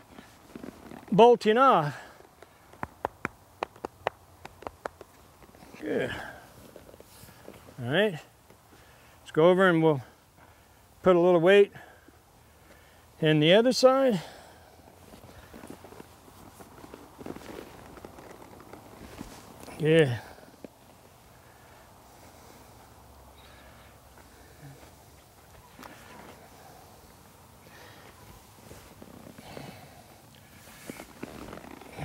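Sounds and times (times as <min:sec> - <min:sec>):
leather saddle creaking: 0:00.0 - 0:07.8, 0:14.6 - 0:22.8, 0:23.4 - 0:32.0.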